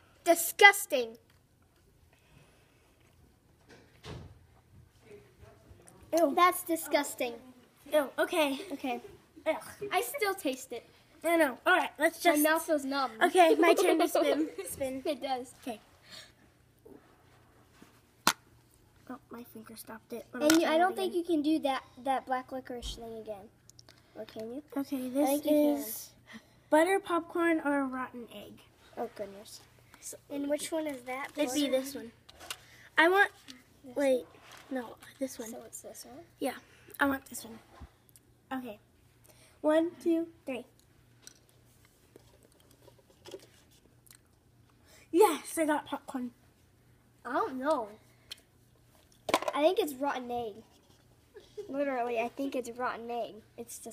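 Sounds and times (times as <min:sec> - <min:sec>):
faint chewing: 0:43.9 - 0:44.8.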